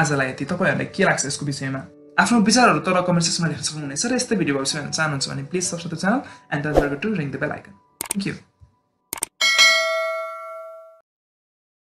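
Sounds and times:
bell-like ding: 9.4 - 11.0.

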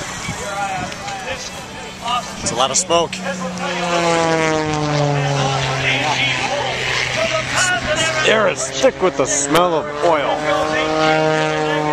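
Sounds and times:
aircraft flying past: 0.0 - 11.9.

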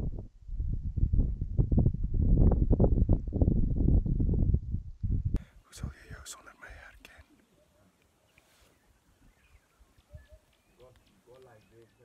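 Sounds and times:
wind buffeting microphone: 0.0 - 6.2, 9.2 - 11.9
man speaking quietly: 5.7 - 8.0.

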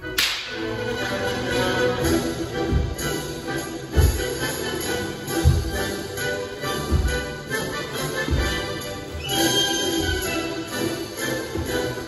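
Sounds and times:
orchestral dance music: 0.0 - 12.0.

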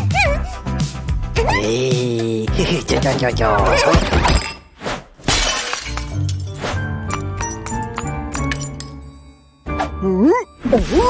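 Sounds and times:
background music: 0.0 - 4.6, 5.4 - 11.0
glass shattering sound effect: 3.8 - 9.0.

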